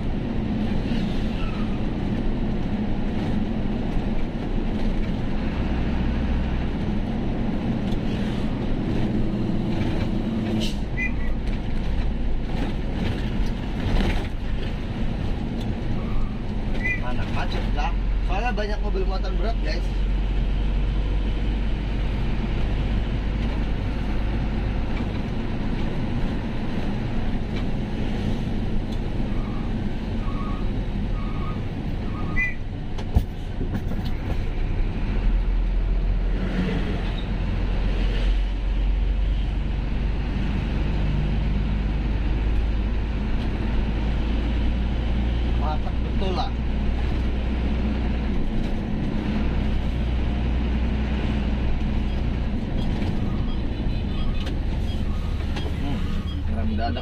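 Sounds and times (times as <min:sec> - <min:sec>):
road noise: 0:00.0 - 0:57.0.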